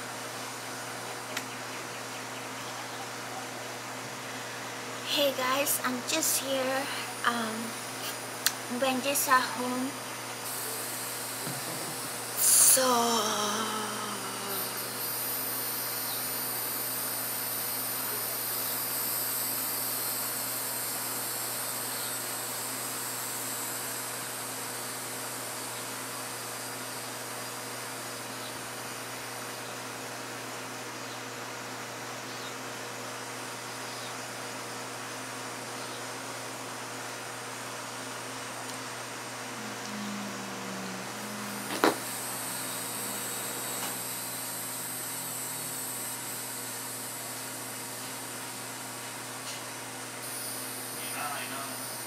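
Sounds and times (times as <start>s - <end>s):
high hissing buzz: 4.0s - 29.8s, 35.8s - 52.0s
low hum: 39.2s - 47.0s.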